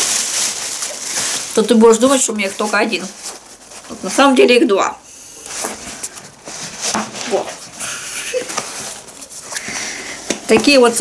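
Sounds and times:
fabric rustling: 0.0s - 4.6s, 5.2s - 11.0s.

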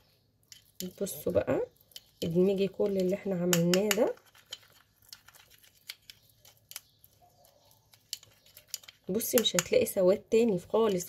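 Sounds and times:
spoon scraping glass bowl: 0.4s - 9.9s.

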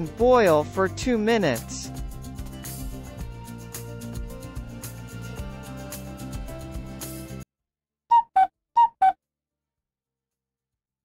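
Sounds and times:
background music: 0.0s - 7.4s.

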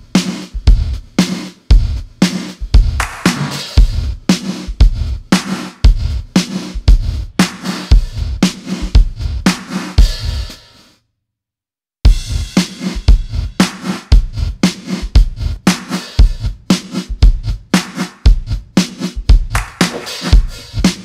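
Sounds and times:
drum machine groove with gated reverb: 0.0s - 11.0s, 12.1s - 21.0s.

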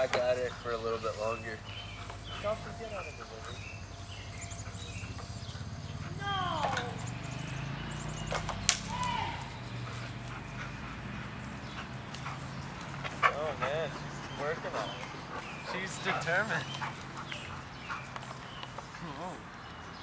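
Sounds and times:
steady low hum: 0.0s - 16.0s
birds chirping: 0.0s - 20.0s
sharp cracks: 8.2s - 9.5s.

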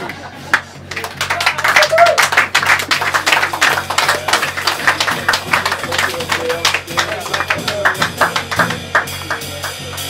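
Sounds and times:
jazz drum kit played with sticks: 2.5s - 10.0s.

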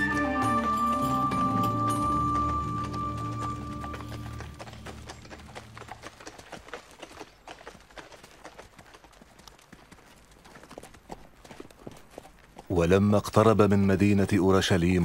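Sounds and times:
background music: 0.0s - 5.7s
donkey hooves clip-clopping on dirt: 0.0s - 15.0s
people's footsteps walking: 0.0s - 15.0s.

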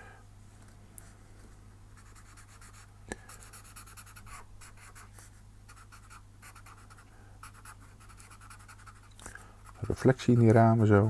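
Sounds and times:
steady low hum: 0.0s - 11.0s
marker scratching on paper: 2.0s - 2.8s, 3.4s - 5.1s, 5.7s - 10.8s.

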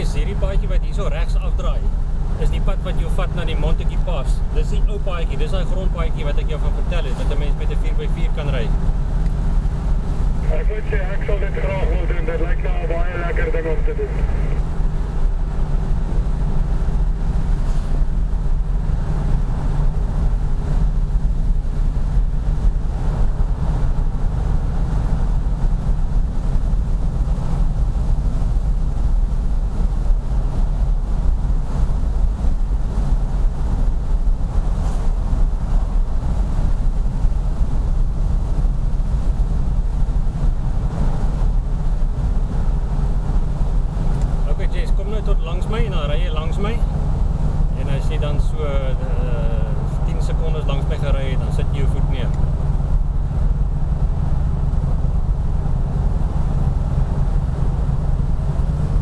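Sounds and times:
car engine deep throb: 0.0s - 59.0s
road noise: 0.0s - 59.0s
wind noise: 8.6s - 59.0s.

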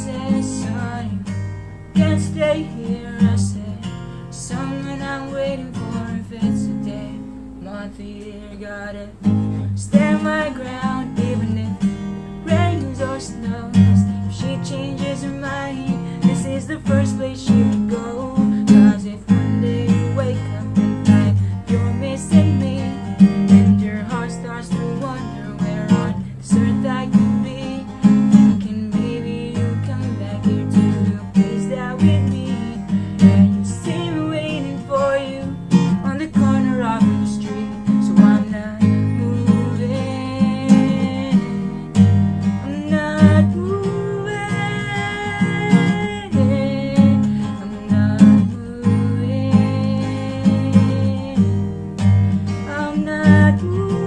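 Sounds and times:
man singing: 0.0s - 1.3s, 2.0s - 42.0s, 42.6s - 51.6s, 52.6s - 54.0s
acoustic guitar strumming: 0.0s - 54.0s.

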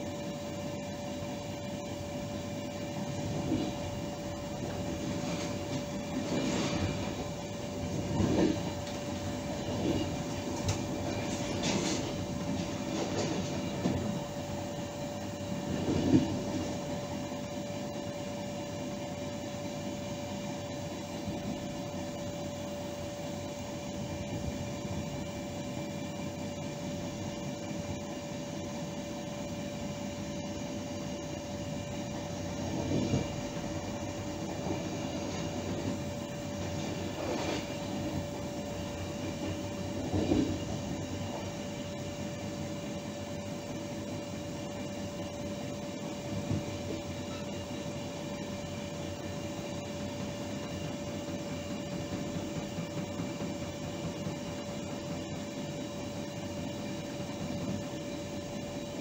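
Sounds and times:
steady hum: 0.0s - 59.0s
train running on track: 0.0s - 59.0s.

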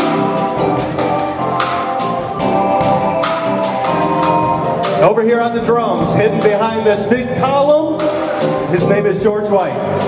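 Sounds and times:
live gospel band: 0.0s - 10.0s
man speaking into microphone: 5.0s - 10.0s.

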